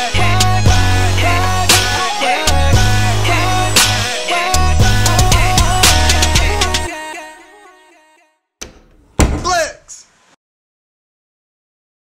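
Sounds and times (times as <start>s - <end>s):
loud slam: 9.2s - 9.6s.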